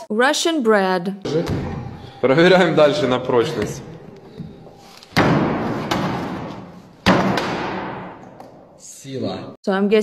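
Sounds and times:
boot striking hard bread on bench: 0:05.2 - 0:08.1.

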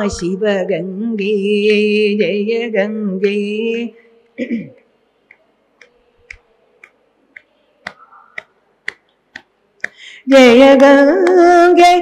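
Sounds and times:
devotional chant: 0:00.0 - 0:12.0
faint sharp clicks in a beat: 0:05.3 - 0:10.0.

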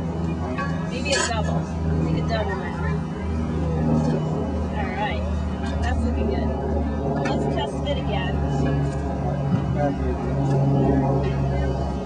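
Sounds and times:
low engine hum: 0:00.0 - 0:12.0
quiet background talk: 0:00.1 - 0:12.0.

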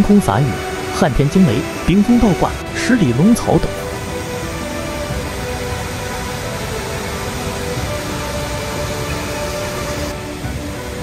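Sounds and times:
background music with soft held tones: 0:00.0 - 0:11.0
waterfall rushing: 0:00.0 - 0:11.0.

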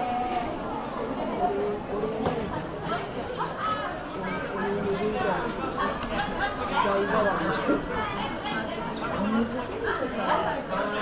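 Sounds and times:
crowd of children chattering: 0:00.0 - 0:11.0.

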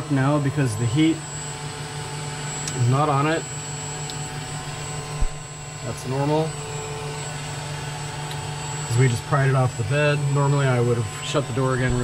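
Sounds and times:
high-pitched whine: 0:00.0 - 0:12.0
machine fans and heater humming: 0:00.0 - 0:12.0.

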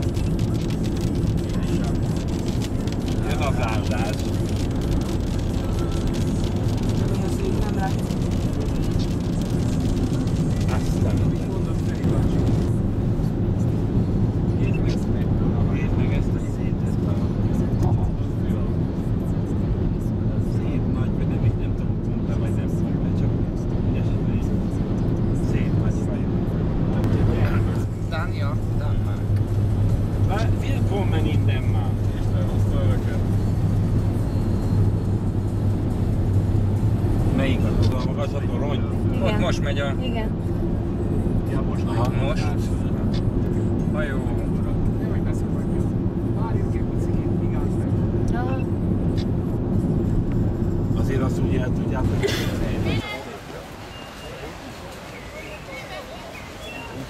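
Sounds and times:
car cabin road and engine drone: 0:00.0 - 0:57.0.

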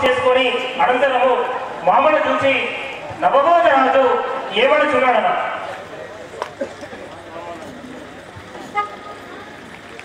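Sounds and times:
low steady background noise: 0:00.0 - 0:10.0
short horn-like toot: 0:08.7 - 0:09.1.

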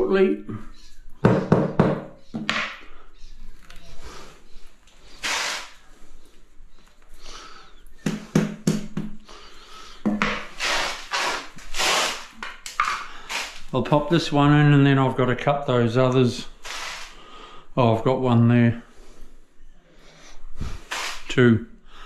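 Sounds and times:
brief scraping: 0:20.6 - 0:21.3.

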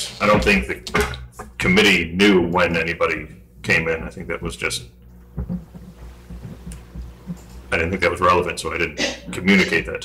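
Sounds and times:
steady low hum: 0:00.0 - 0:10.0
faint low thumps: 0:03.4 - 0:08.0.

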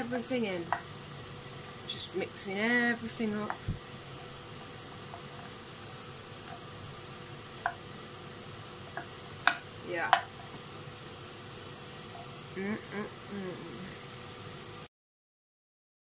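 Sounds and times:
vegetables sizzling in frying pan: 0:00.0 - 0:14.9
wooden spoon knocking pan: 0:00.6 - 0:00.9, 0:03.4 - 0:03.8, 0:07.6 - 0:07.9, 0:08.9 - 0:10.4.

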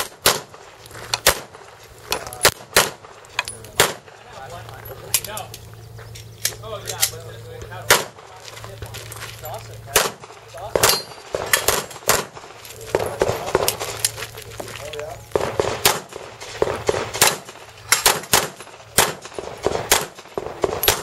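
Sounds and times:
pistol shots: 0:00.0 - 0:01.7, 0:02.3 - 0:04.2, 0:07.8 - 0:08.3, 0:09.9 - 0:14.1, 0:15.3 - 0:21.0.

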